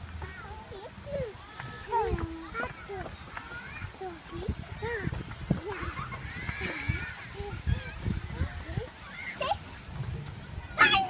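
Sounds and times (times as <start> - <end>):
young children babbling and squealing: 0.2 - 11.0.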